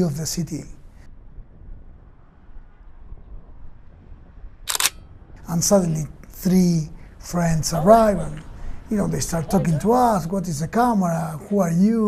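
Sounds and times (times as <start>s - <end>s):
low background rumble: 0.0s - 12.0s
camera shutter click: 4.7s - 5.0s.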